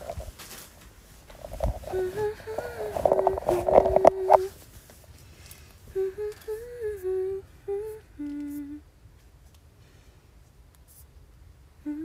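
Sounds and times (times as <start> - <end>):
woman humming a slow melody: 1.7 - 4.6, 5.9 - 8.9, 11.8 - 12.0.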